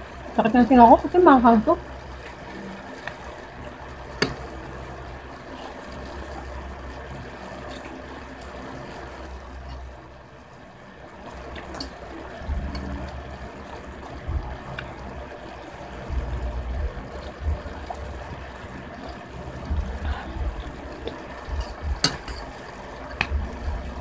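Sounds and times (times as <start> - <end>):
low rumble: 11.4 - 24.0.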